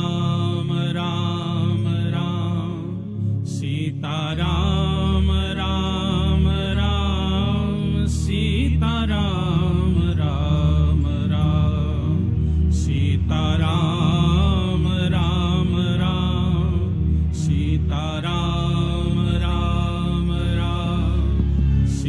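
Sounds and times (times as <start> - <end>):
low musical accompaniment: 0.0 - 22.0
person chanting melodically: 0.0 - 22.0.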